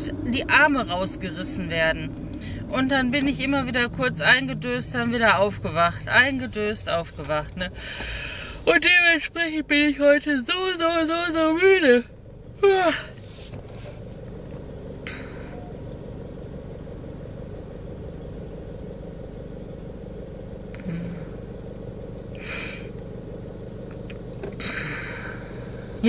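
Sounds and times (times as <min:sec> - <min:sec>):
car engine idling: 0:00.0 - 0:26.0.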